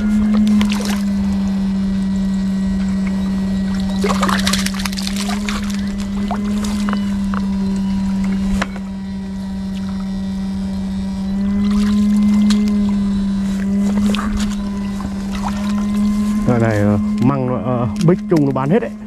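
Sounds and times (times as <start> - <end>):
electric buzz: 0.0 - 19.0.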